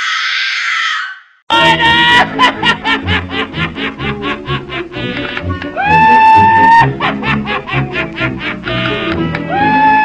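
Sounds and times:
person laughing: 1.5s - 9.9s.

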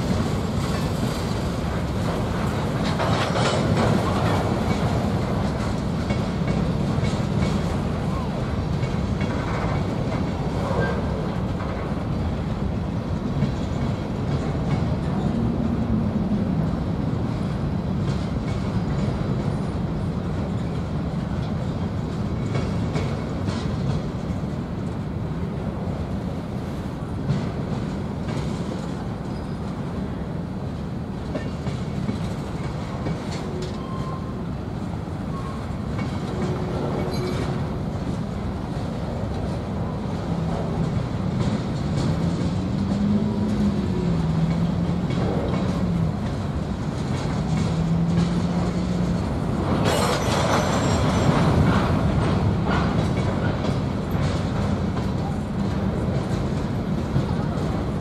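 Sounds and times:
train knocks: 0.0s - 15.9s, 16.5s - 58.0s
freight train rolling past: 0.0s - 58.0s
steel wheels rumbling on rails: 0.0s - 58.0s.

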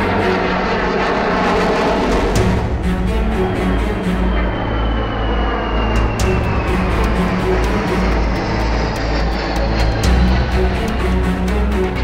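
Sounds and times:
fighter jet flying overhead: 0.0s - 12.0s.

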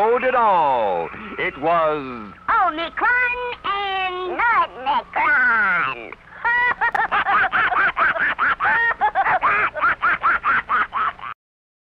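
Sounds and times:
high sped-up cartoon voice: 2.5s - 6.1s.

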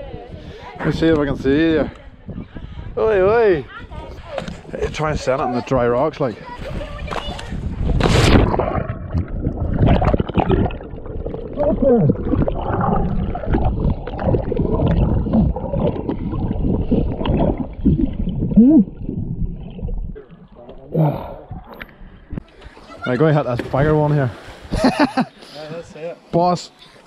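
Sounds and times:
muffled underwater rushing bubbling: 7.6s - 22.6s
body splashing into water: 7.9s - 20.3s.

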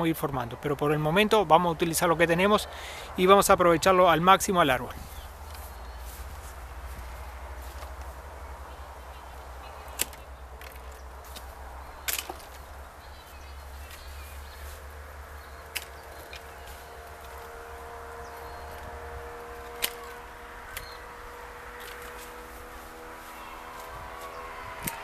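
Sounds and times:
pruning shears snipping branches: 5.0s - 8.7s, 9.4s - 25.0s.

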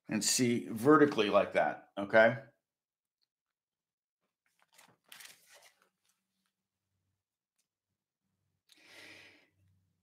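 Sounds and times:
paper rustling: 4.4s - 6.6s.

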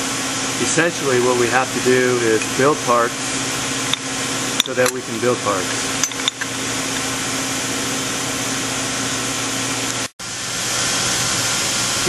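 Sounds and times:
machinery hum and hiss: 0.0s - 12.0s.

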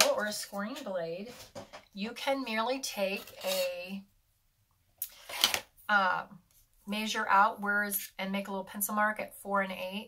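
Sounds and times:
woman speaking: 0.0s - 1.4s, 2.0s - 4.1s, 5.9s - 10.0s.

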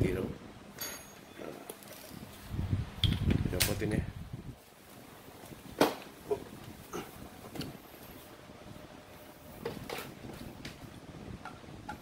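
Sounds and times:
metal tools clicking and knocking: 0.8s - 2.0s.

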